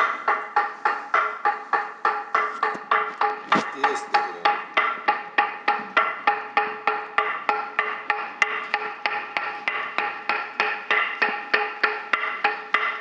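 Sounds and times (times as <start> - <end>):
wooden board struck with mallet: 0.0 - 13.0.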